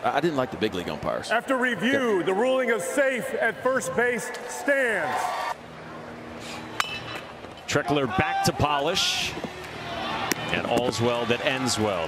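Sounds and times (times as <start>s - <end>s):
stadium crowd: 0.0s - 6.8s, 7.7s - 12.0s.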